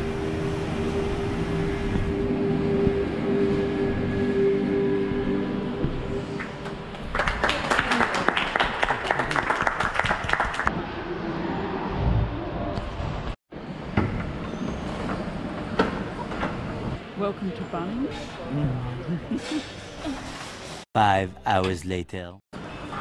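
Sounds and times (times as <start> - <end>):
applause from small crowd: 6.4 - 10.7.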